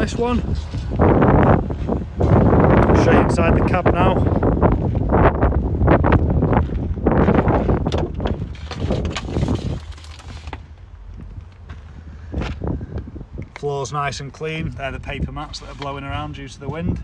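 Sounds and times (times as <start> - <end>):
wind buffeting microphone: 0.0 - 17.0
knocks and rustling: 6.6 - 12.7.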